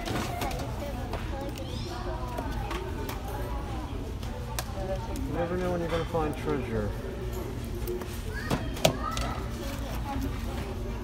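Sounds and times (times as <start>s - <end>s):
child's high voice: 8.3s - 9.8s.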